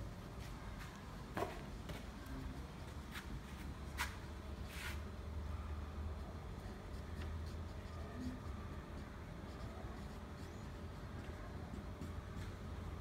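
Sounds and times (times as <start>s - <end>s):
long writing scrape: 4.0s - 5.1s
pen ticks and scratches: 6.5s - 13.0s.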